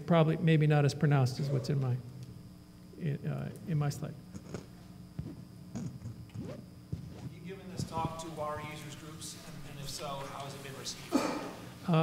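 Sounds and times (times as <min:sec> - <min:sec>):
low hall hum: 0:00.0 - 0:12.0.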